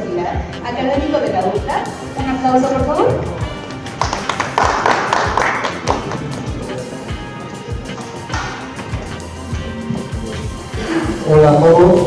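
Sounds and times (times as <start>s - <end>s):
music playing: 0.0s - 12.0s
audience applauding: 3.6s - 7.0s, 7.9s - 8.8s.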